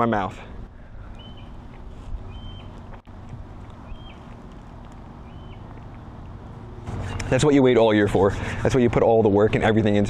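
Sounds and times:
low outdoor rumble: 0.0s - 10.0s
bird whistling: 1.2s - 1.6s, 2.3s - 2.7s, 3.9s - 4.2s, 5.2s - 5.6s.

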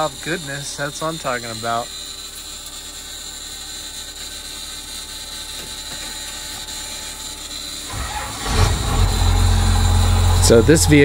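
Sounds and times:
starter motor cranking: 7.0s - 11.0s
diesel engine running: 7.9s - 11.0s.

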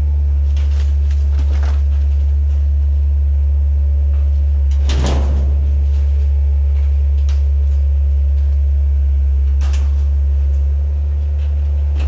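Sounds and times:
camper body crunching: 0.0s - 12.0s
heavy machine engine droning: 0.0s - 12.0s
small cracks: 0.3s - 2.8s, 4.2s - 12.0s.

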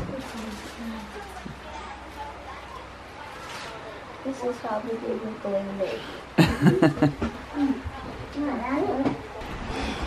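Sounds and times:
people talking: 0.0s - 6.2s
people chuckling: 6.4s - 7.4s.

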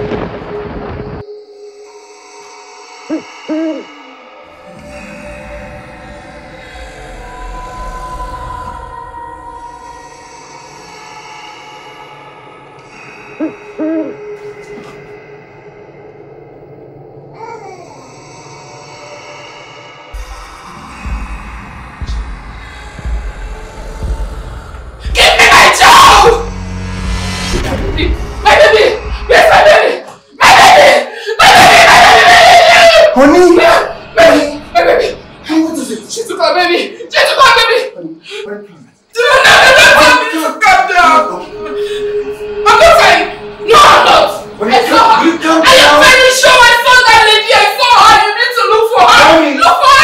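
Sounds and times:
background music drone: 0.0s - 37.2s, 39.1s - 50.0s
woman screaming: 30.4s - 33.2s.

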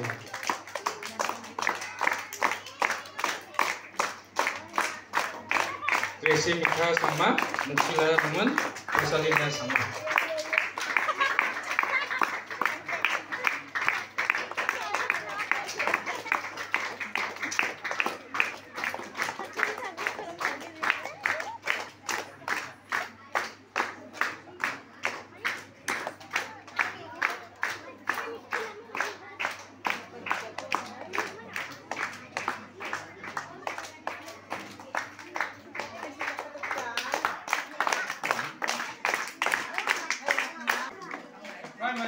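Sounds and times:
hands clapping in rhythm: 0.0s - 42.0s
man speaking: 6.2s - 9.9s.

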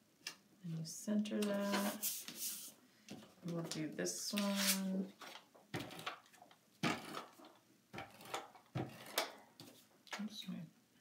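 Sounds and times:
tape dispenser scraping on paper: 4.4s - 6.2s, 6.8s - 9.3s.

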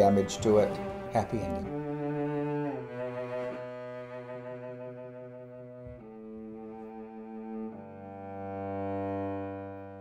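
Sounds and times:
cello bowed sustained notes: 0.0s - 10.0s.

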